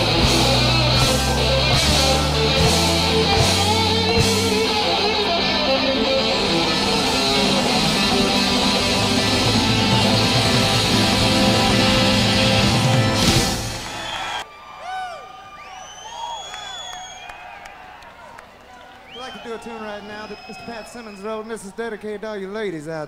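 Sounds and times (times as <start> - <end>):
electric guitar: 0.0 - 14.2
rock band playing live: 0.0 - 14.2.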